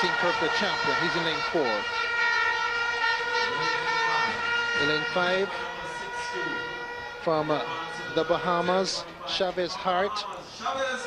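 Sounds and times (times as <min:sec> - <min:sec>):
commentator speaking: 0:00.0 - 0:01.9, 0:03.4 - 0:11.0
steady drone of held tones: 0:00.0 - 0:11.0.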